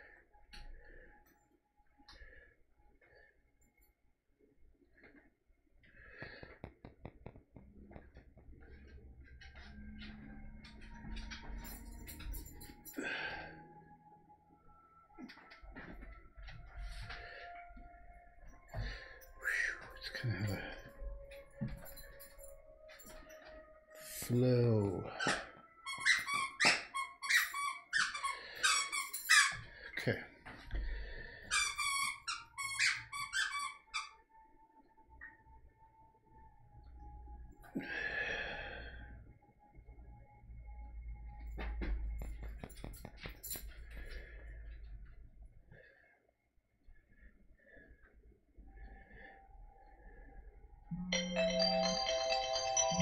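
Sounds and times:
squeal: 0:25.2 - 0:29.7, 0:31.5 - 0:34.2.

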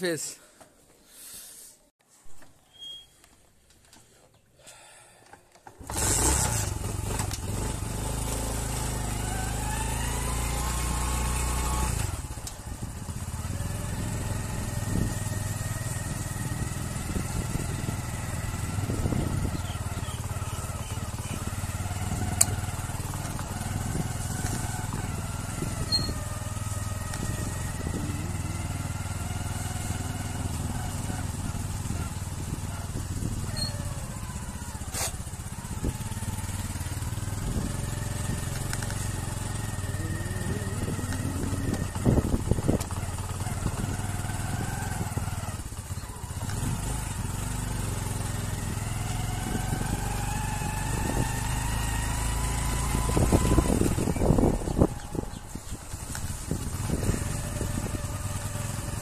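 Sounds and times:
small motorcycle engine running: 0:05.7 - 0:59.0.

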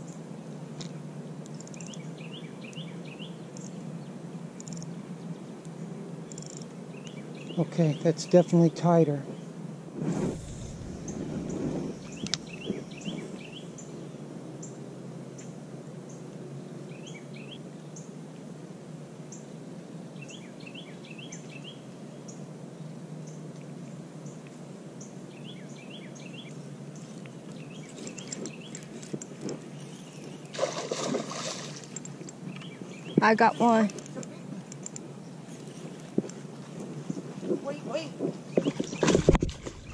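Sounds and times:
small bird chirping: 0:01.4 - 0:03.8, 0:10.4 - 0:14.8, 0:25.0 - 0:30.6, 0:31.2 - 0:36.1
brief burst of noise: 0:10.0 - 0:12.2
steady low rush: 0:10.0 - 0:13.5.

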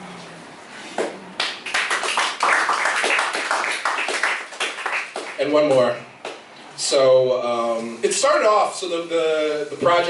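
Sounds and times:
audience clapping: 0:01.0 - 0:06.4.

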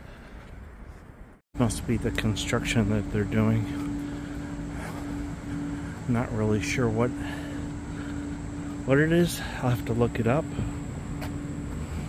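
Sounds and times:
construction machinery drone: 0:01.6 - 0:12.0.

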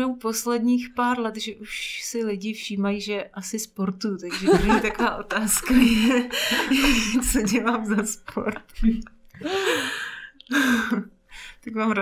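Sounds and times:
person speaking: 0:04.2 - 0:10.7
woman laughing breathily: 0:05.6 - 0:11.1.

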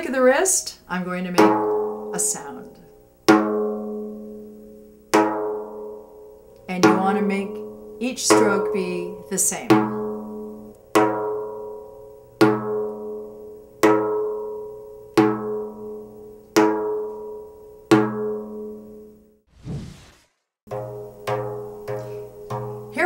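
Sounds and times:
frame drum strokes: 0:20.7 - 0:23.0.

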